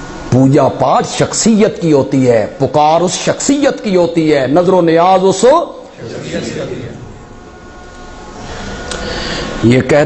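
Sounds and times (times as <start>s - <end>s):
low hum and hiss: 0.0s - 10.0s.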